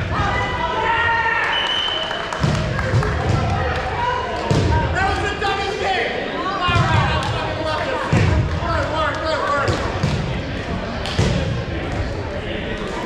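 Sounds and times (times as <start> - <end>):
many people chatting: 0.0 - 13.0
balls bouncing on gym floor: 2.4 - 5.0, 6.6 - 12.2.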